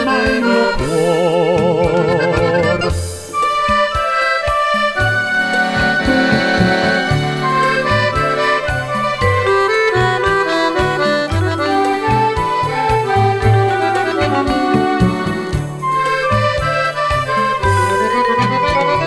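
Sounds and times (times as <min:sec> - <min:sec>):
accordion melody: 0:00.0 - 0:19.0
rhythmic bass line: 0:00.0 - 0:19.0.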